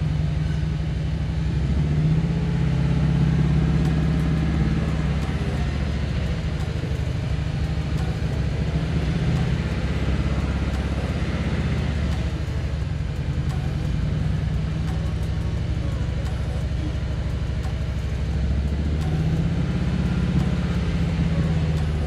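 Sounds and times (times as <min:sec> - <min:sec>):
car engine at fast idle: 0:00.0 - 0:22.0.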